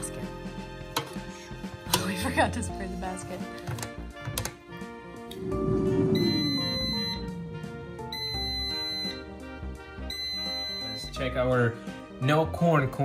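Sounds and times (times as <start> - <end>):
background music: 0.0 - 13.0
high-pitched electronic beep: 5.5 - 7.4.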